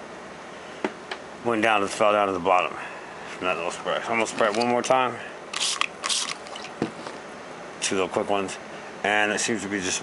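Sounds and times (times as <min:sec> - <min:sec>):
spray bottle spritzing: 0:05.6 - 0:06.7.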